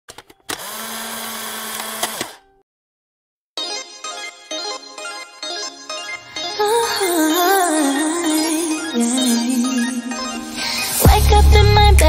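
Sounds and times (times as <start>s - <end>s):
drill-like buzzing with low tone: 0.6s - 2.4s
quick clicks: 1.7s - 2.4s.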